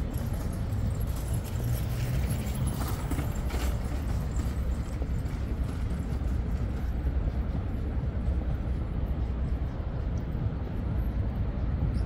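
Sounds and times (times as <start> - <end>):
footsteps on pavement: 0.0 - 11.2
low outdoor rumble: 0.0 - 12.0.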